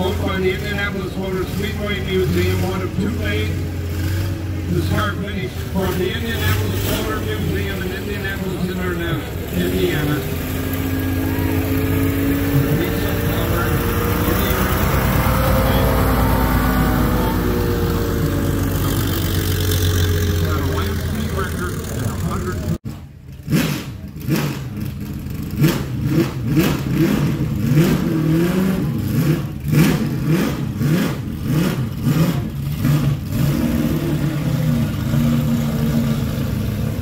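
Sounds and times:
race car diesel engine passing: 0:00.0 - 0:22.8, 0:23.6 - 0:37.0.

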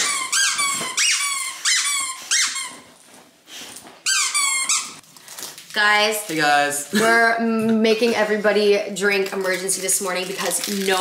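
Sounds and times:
squeaky dog toy squeaks: 0:00.0 - 0:03.1, 0:04.0 - 0:05.0.

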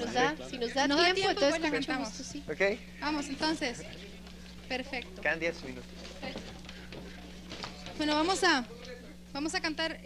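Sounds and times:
low electrical hum: 0:00.0 - 0:10.0
faint background voices: 0:03.6 - 0:09.3.

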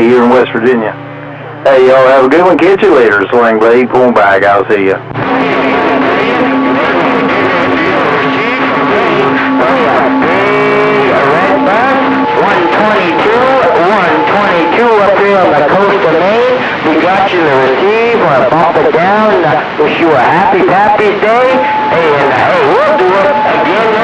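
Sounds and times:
garbled radio voices: 0:00.0 - 0:24.0
steady radio tone: 0:00.0 - 0:24.0.

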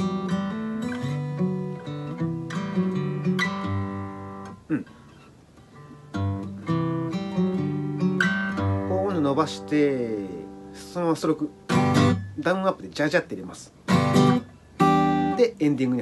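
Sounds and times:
fingerstyle acoustic guitar: 0:00.0 - 0:12.8, 0:13.8 - 0:16.0.

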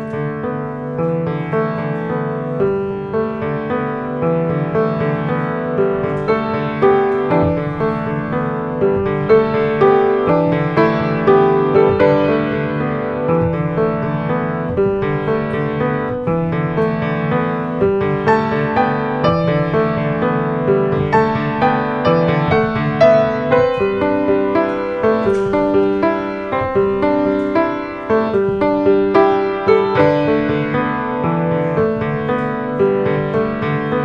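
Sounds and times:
grand piano playing: 0:00.0 - 0:34.0.

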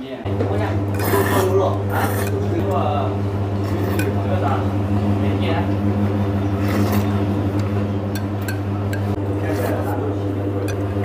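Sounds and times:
steady low hum: 0:00.2 - 0:11.0
noodles being slurped: 0:00.9 - 0:02.5, 0:03.6 - 0:04.2, 0:06.5 - 0:07.3.

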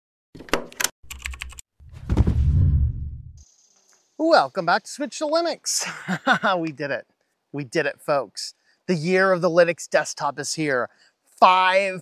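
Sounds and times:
whoosh with deep rumble: 0:01.8 - 0:03.4.

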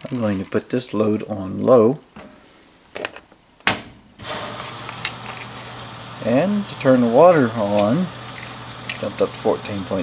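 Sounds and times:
water rushing into tub: 0:04.2 - 0:10.0.

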